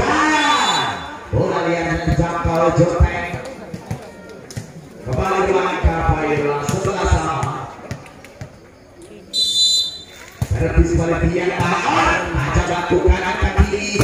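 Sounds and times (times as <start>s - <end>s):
referee whistle blast: 0.3s - 1.2s, 9.3s - 10.2s.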